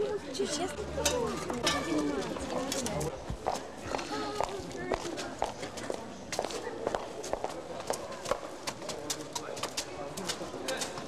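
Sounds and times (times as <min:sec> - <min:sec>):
footsteps on concrete steps: 0:02.2 - 0:11.0.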